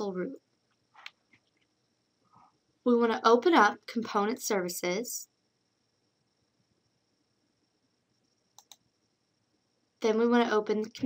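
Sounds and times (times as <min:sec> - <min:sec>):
computer mouse double-click: 0:08.6 - 0:08.8.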